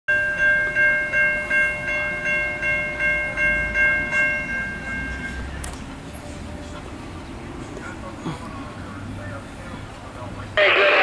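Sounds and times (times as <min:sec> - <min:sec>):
railroad crossing bell ringing: 0:00.1 - 0:07.3.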